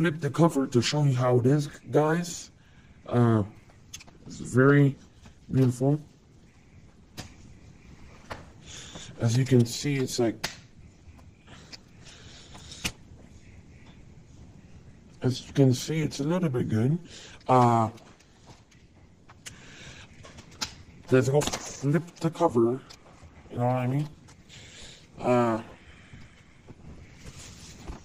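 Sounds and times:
faint room noise: 0.0s - 28.0s
low background hiss: 0.0s - 28.0s.

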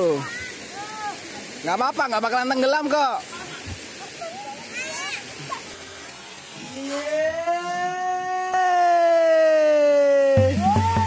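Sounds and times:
water lapping and splashing: 0.0s - 8.0s.

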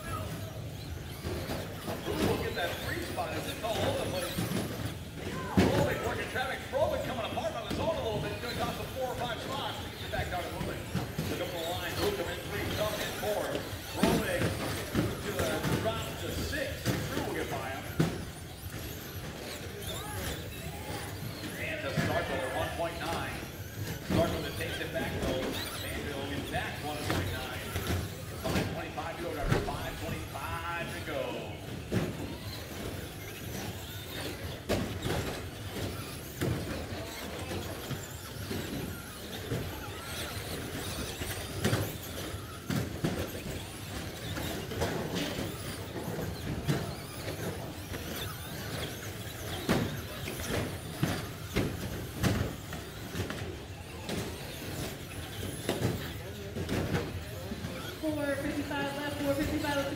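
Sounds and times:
rc trucks racing: 0.0s - 59.9s.

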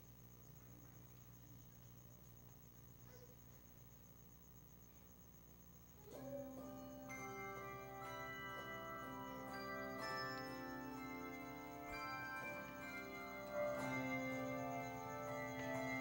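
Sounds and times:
handbell choir playing chords: 6.5s - 16.0s.

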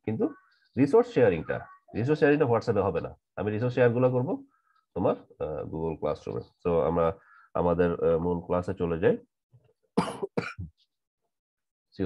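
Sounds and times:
person speaking: 0.0s - 9.3s
person coughing: 10.0s - 10.7s.

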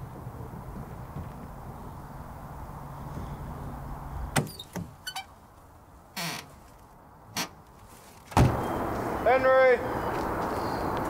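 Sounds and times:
car door knocks and rustles: 8.2s - 8.6s.

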